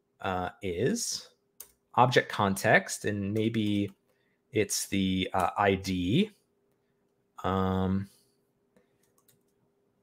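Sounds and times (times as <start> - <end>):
computer keyboard clicks: 9.0 - 9.6.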